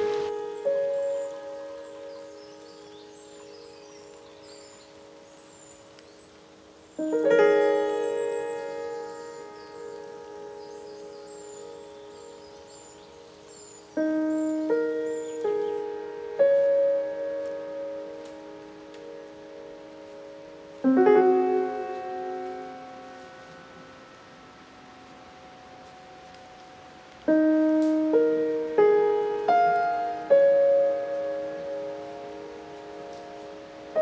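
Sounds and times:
slow piano chords: 0.0 - 34.0.

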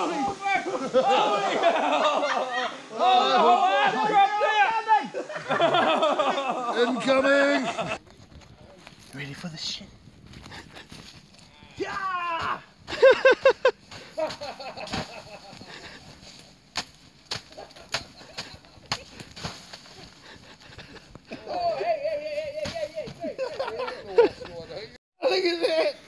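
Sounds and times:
footsteps crunching through dry leaves: 8.1 - 20.7
person laughing: 12.9 - 16.0, 20.0 - 24.7.

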